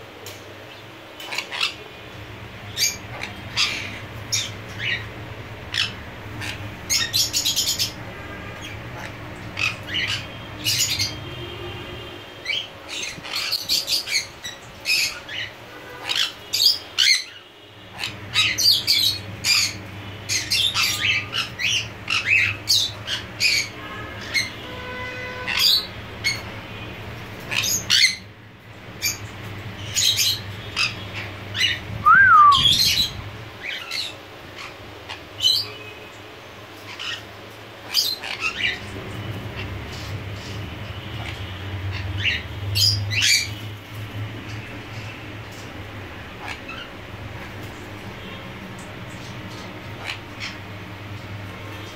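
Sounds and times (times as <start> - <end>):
parrots squawking: 1.2 - 1.9, 2.7 - 11.3, 12.4 - 26.5, 27.3 - 28.3, 29.8 - 35.8, 36.8 - 43.6, 46.1 - 48.2, 48.8 - 50.9
parrot shrill squawks: 31.6 - 33.1.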